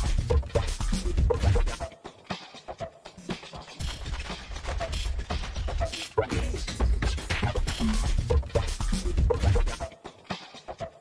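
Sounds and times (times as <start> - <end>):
drum and percussion hits: 0.0 - 10.8.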